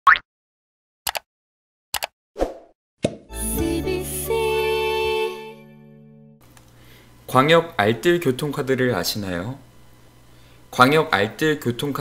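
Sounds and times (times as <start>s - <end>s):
musical logo jingle: 3.3s - 6.4s.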